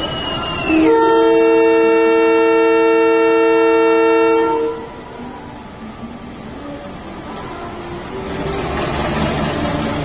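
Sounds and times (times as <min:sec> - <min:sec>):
locomotive air horn blast: 0:00.7 - 0:05.0.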